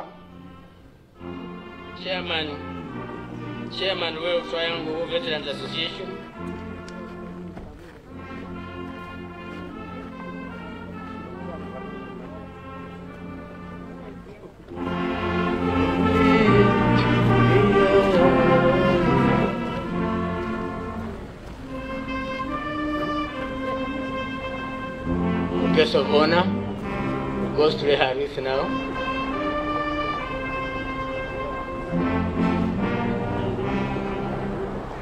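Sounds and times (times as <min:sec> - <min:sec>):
military brass band playing: 0:00.0 - 0:35.0.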